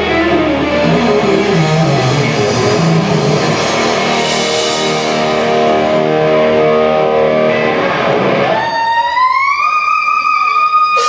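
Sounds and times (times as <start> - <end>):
electric guitar through amplifier: 0.0 - 11.0.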